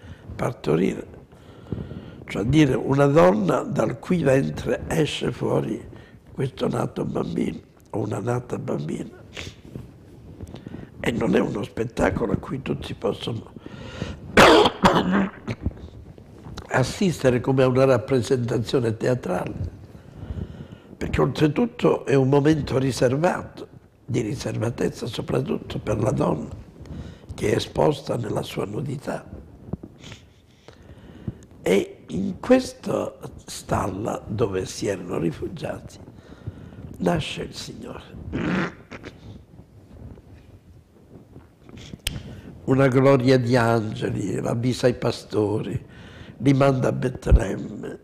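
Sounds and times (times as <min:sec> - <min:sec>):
man coughing: 0:14.4 - 0:15.7.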